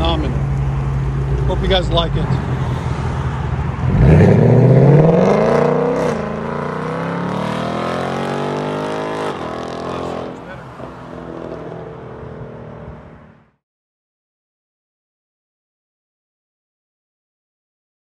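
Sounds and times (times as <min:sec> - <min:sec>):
car engine accelerating hard: 0:03.7 - 0:13.1.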